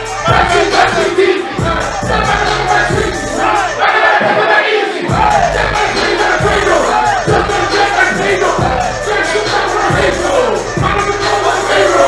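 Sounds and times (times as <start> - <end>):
crowd shouting and chanting: 0.0 - 12.0
rap music over pa: 0.0 - 12.0.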